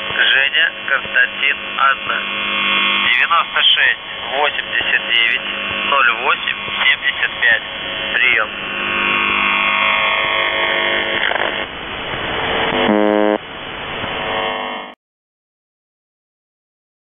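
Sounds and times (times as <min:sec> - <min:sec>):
short radio buzz: 0:00.0 - 0:11.7, 0:12.4 - 0:13.4, 0:14.1 - 0:15.0
shortwave radio noise: 0:00.0 - 0:11.8, 0:12.4 - 0:13.4
steady radio tones: 0:00.0 - 0:13.4
warbling radio whistles: 0:12.5 - 0:13.4.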